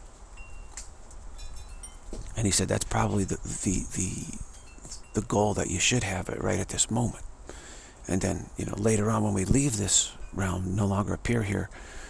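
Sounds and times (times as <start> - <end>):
steady low hiss: 0.0 - 12.0
high thin ringing tones: 0.4 - 5.8.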